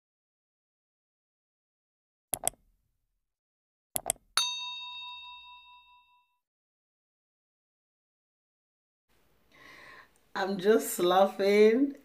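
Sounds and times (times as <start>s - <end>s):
mouse click sound effects: 2.4s - 2.6s
bright bell ding: 4.4s - 6.4s.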